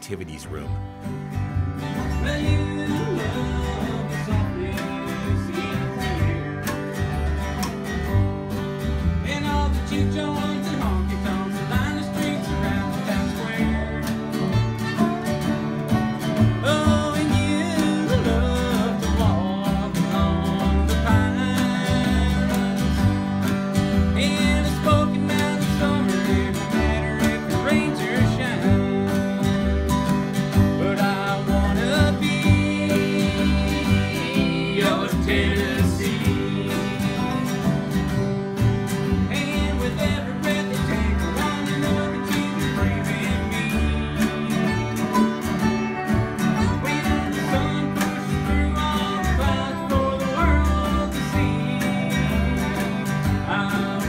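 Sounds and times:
man singing: 0.0 - 0.7, 2.0 - 7.7, 9.2 - 15.2, 16.6 - 29.9, 30.6 - 37.9, 39.1 - 45.4, 46.6 - 54.0
acoustic guitars strummed and picked: 0.0 - 54.0
upright bass notes: 0.0 - 54.0.

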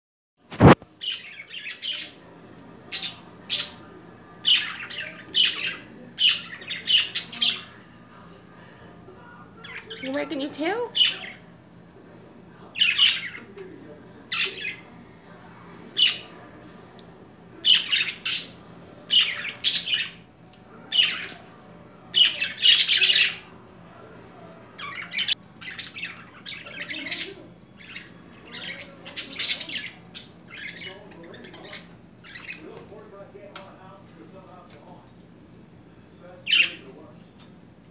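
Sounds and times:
budgerigars chirping and squawking: 0.6 - 2.2, 2.9 - 7.8, 9.6 - 11.4, 12.7 - 13.6, 14.3 - 14.9, 16.0 - 16.3, 17.6 - 20.3, 20.9 - 21.4, 22.2 - 23.5, 24.8 - 32.7, 36.4 - 36.9.

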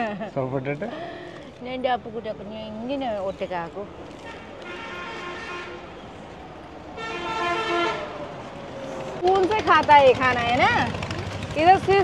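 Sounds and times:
traffic noise: 0.0 - 12.0
vehicle horns: 4.2 - 6.0, 7.0 - 8.2.

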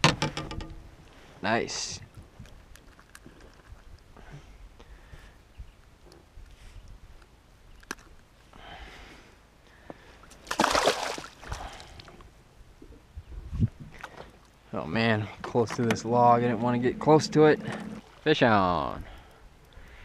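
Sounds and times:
faint water lapping: 9.7 - 12.3, 16.4 - 20.0
fish splashing: 10.4 - 12.0.

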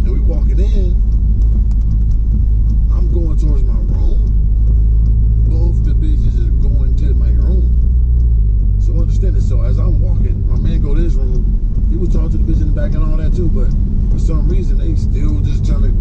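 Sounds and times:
car engine and road rumble: 0.0 - 16.0.

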